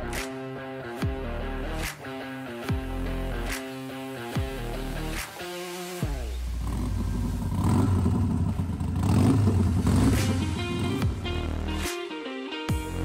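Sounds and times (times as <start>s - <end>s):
music: 0.0s - 13.0s
motorcycle engine revving: 6.0s - 11.9s.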